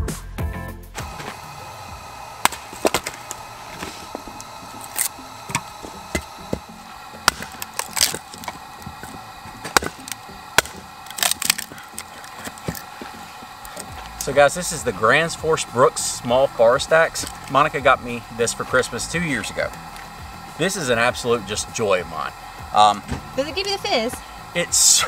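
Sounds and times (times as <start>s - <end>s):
axe chopping and splitting wood: 1.0s - 14.4s, 22.8s - 23.4s.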